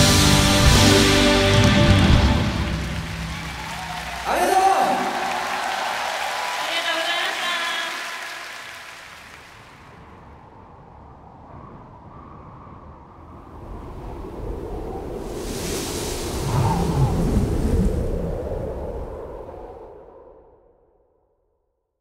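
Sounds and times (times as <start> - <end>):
low rushing storm noise: 9.3 - 20.2.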